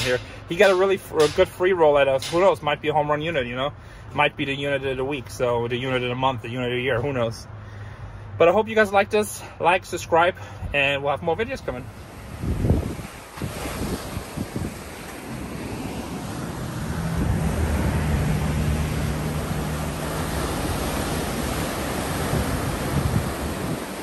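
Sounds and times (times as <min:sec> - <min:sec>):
surf washing over rocks: 0:00.0 - 0:03.6, 0:10.0 - 0:24.0
wind buffeting microphone: 0:12.0 - 0:24.0.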